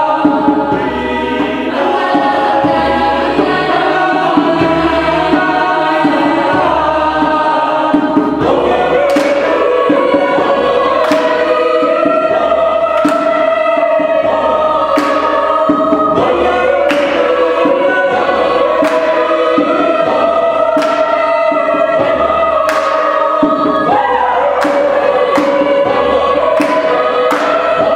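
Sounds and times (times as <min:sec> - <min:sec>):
choir singing a cappella: 0:00.0 - 0:27.9
hand claps: 0:09.0 - 0:09.6, 0:11.0 - 0:11.5, 0:13.0 - 0:13.4, 0:15.0 - 0:15.4, 0:16.9 - 0:17.3, 0:18.8 - 0:19.2, 0:20.8 - 0:21.1, 0:22.7 - 0:23.1, 0:24.6 - 0:25.7, 0:26.6 - 0:27.6.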